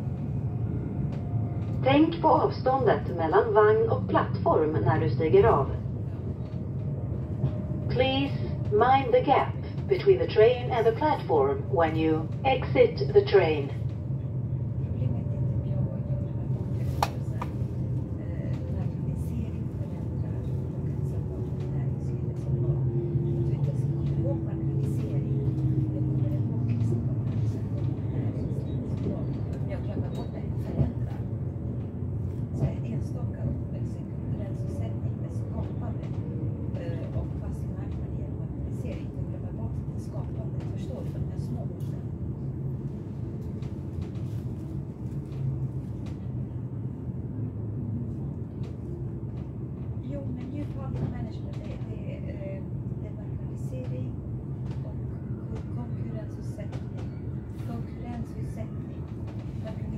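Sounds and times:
train rumbling on track: 0.0 - 59.9.

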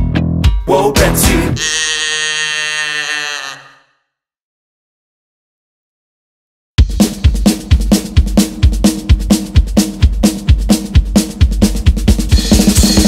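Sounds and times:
drum kit playing fast beat: 6.8 - 13.0
drum roll: 6.8 - 13.0.

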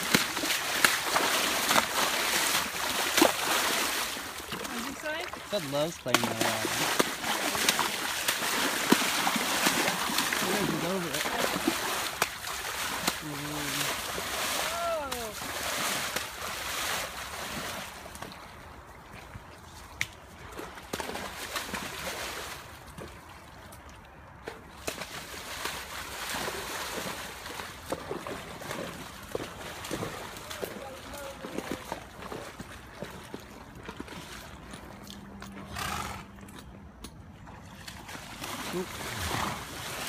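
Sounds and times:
horse hooves splashing in water: 0.0 - 40.0.

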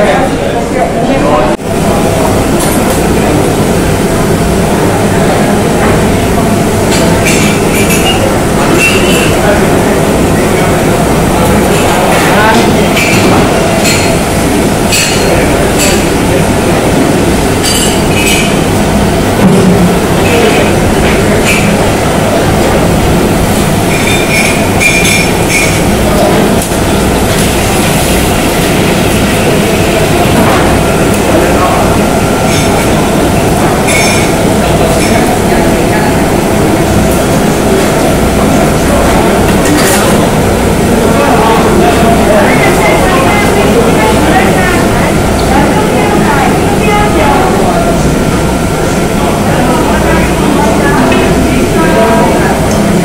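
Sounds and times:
gas burners and extractor rumble: 0.0 - 53.0.

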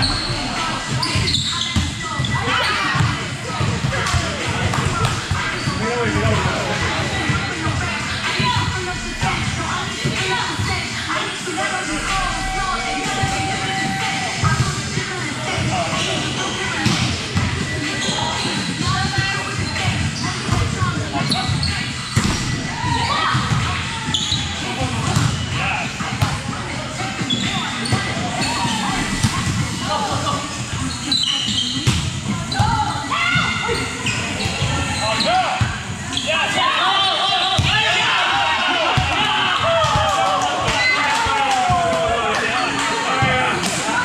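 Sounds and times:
players calling and chatting: 0.0 - 44.0.

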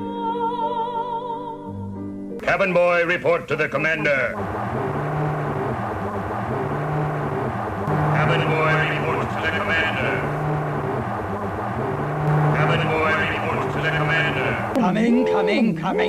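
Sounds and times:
low pulsing electronic hum: 4.3 - 14.8.

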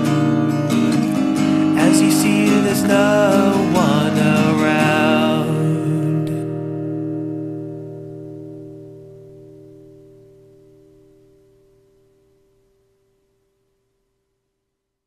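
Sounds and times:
acoustic guitar chord ringing: 0.0 - 13.8.

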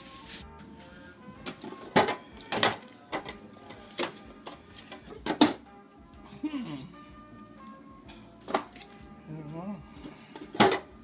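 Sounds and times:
plastic containers knocking and clicking: 1.4 - 3.4, 4.8 - 5.6, 10.4 - 10.9.

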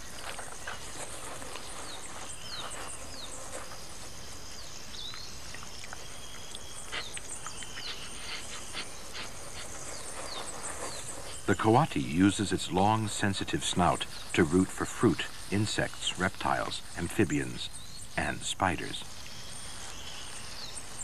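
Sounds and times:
scratching in leaf litter: 0.0 - 17.7
insects hissing: 0.0 - 21.0.

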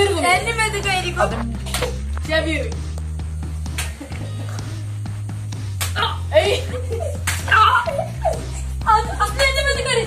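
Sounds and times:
background music: 0.0 - 10.0
water balloon wet slaps: 1.6 - 2.1, 3.7 - 4.0, 5.7 - 6.1, 7.2 - 7.9
children shouting and laughing: 6.0 - 10.0.

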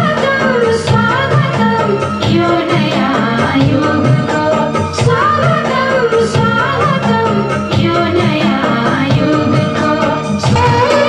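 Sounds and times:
person singing gliding melody: 9.8 - 11.0
steady drum beat: 10.4 - 11.0.

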